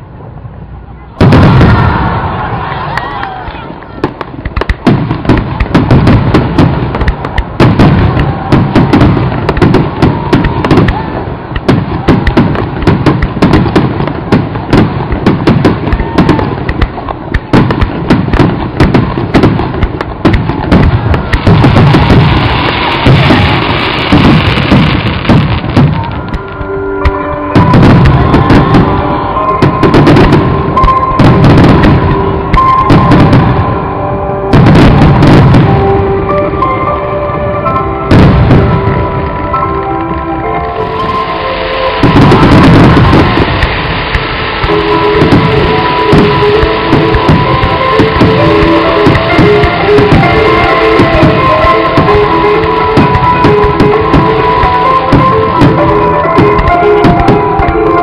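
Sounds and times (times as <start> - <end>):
firework shells bursting: 4.1 - 33.6, 40.7 - 58.0
music with held notes: 23.7 - 58.0.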